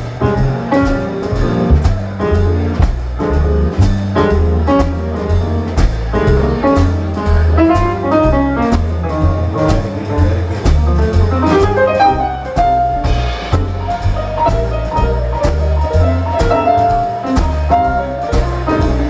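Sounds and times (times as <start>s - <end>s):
bass line: 0.0s - 19.0s
drums and cymbals: 0.0s - 19.0s
lead instrument melody: 0.0s - 19.0s.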